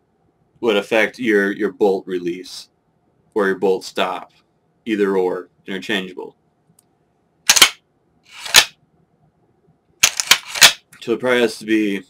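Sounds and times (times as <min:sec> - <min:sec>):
rifle bolt sliding and clacking: 0:07.5 - 0:08.7, 0:10.0 - 0:10.8.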